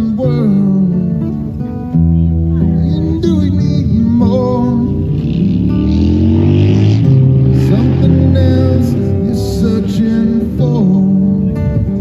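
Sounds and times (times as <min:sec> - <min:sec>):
acoustic guitar and vocal music: 0:00.0 - 0:12.0
vehicle engine accelerating: 0:03.2 - 0:11.2.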